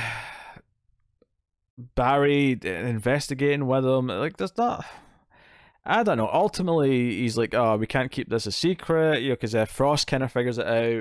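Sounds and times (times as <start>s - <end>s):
breathy sigh: 0.0s - 0.7s
short breath: 0.0s - 0.7s, 4.8s - 5.8s.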